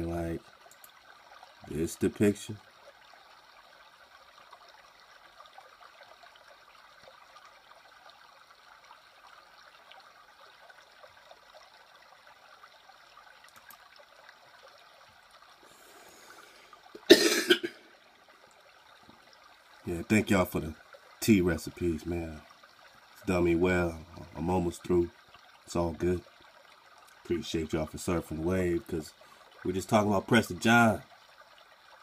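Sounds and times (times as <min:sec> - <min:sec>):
faint steady hiss: 0:00.0 - 0:32.0
man coughing: 0:17.0 - 0:17.9.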